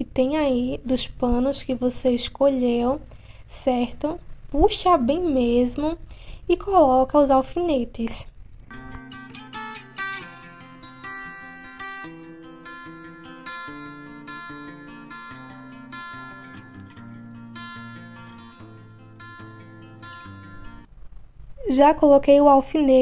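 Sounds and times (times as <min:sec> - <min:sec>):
acoustic guitar picking: 0:08.6 - 0:20.9.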